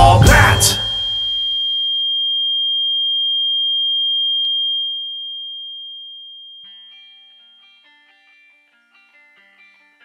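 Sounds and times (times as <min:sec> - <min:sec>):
music: 0:00.0 - 0:01.7, 0:06.6 - 0:10.0
high-pitched electronic tone: 0:00.0 - 0:02.0.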